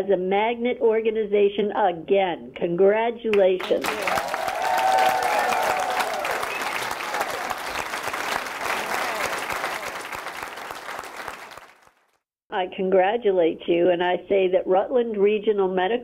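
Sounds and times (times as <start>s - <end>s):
audience applauding: 3.6s - 12.2s
voices calling out: 8.6s - 10.0s.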